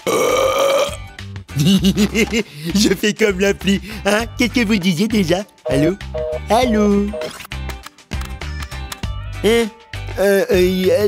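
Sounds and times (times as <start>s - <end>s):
cartoon burp: 0.0s - 1.1s
background music: 0.0s - 11.0s.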